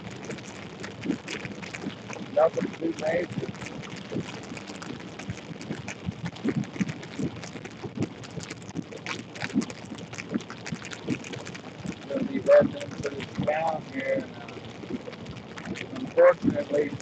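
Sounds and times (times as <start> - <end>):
low running noise: 0.0 - 17.0
rain pattering on a vehicle: 0.0 - 17.0.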